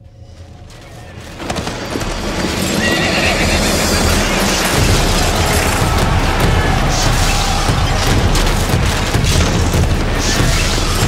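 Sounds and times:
rumble of hooves: 0.0 - 11.0
horse whinnying: 2.4 - 4.7.

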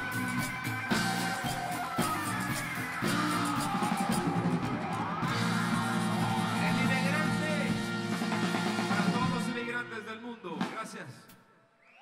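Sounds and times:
live funk band playing: 0.0 - 9.9
horn section: 0.0 - 10.7
man singing: 8.6 - 11.1.

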